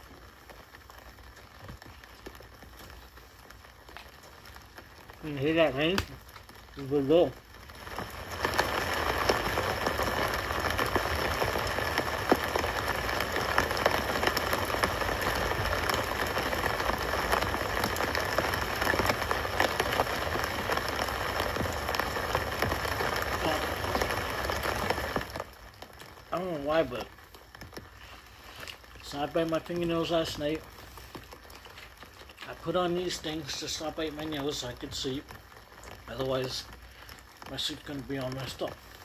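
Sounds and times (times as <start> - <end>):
rain falling on a street: 0.0 - 39.0.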